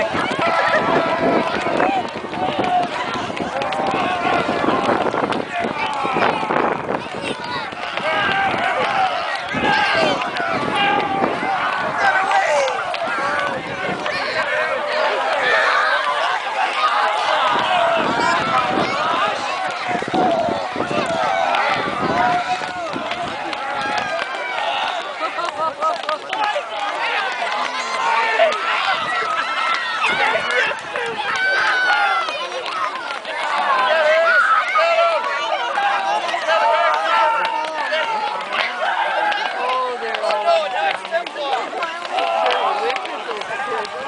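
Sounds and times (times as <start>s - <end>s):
children shouting and squealing: 0.0s - 44.0s
crowd voices: 0.0s - 44.0s.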